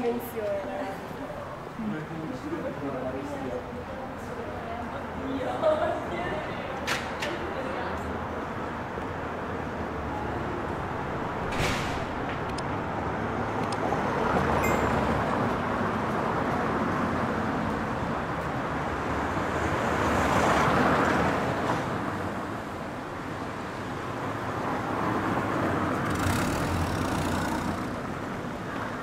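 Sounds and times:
vehicle driving by: 0:25.0 - 0:28.6.

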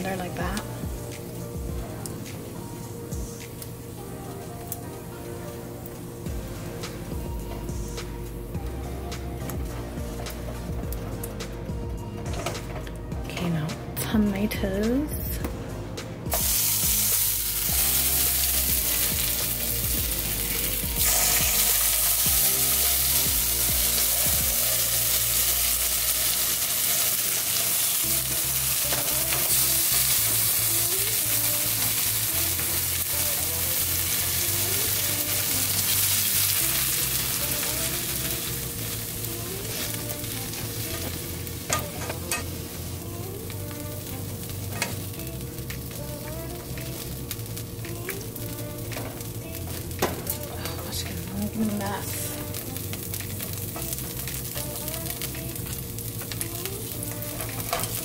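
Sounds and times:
tomato slices sizzling in oil: 0:16.3 - 0:58.0.

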